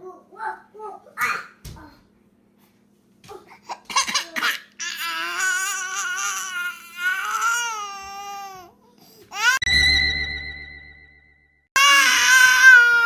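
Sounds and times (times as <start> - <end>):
baby crying: 4.8 - 9.8, 11.8 - 13.0.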